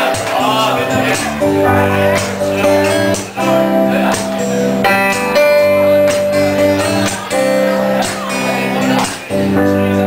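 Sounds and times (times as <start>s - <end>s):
rock band playing: 0.0s - 10.0s
strummed acoustic guitar chords: 0.0s - 10.0s.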